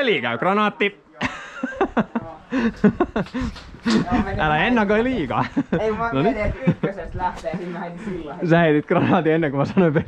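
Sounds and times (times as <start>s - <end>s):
men chuckling and laughing: 1.2s - 4.5s, 5.2s - 7.1s, 9.0s - 10.0s.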